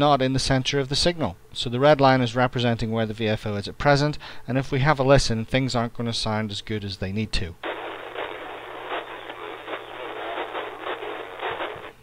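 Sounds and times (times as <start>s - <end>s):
crackling radio hiss: 7.4s - 12.0s.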